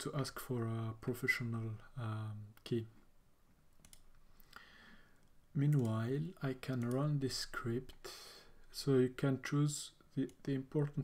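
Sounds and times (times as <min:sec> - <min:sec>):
computer mouse clicks: 0:03.8 - 0:04.6, 0:06.7 - 0:07.2.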